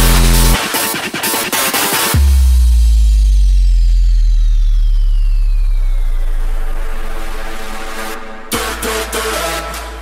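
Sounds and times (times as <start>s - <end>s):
deep sub-bass note: 0.0s - 0.6s, 2.2s - 8.9s
high-pitched downward sweep: 0.0s - 0.6s.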